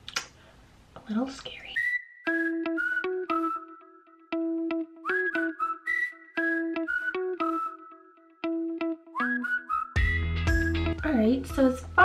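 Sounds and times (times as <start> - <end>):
whistled tune: 1.8 - 12.0
plucked guitar: 2.3 - 12.0.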